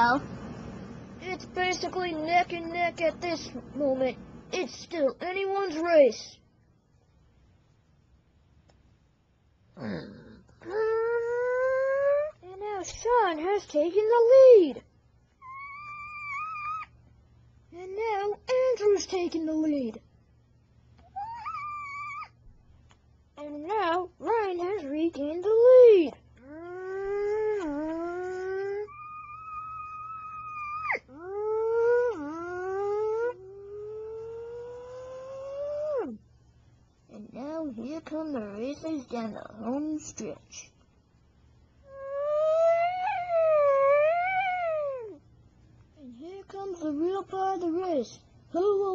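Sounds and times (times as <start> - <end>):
person imitating motorbike engines: 9.8 - 12.4, 26.4 - 29.0, 30.7 - 36.2, 41.9 - 45.2
vocal howl rising in pitch: 26.6 - 36.2, 41.9 - 45.2.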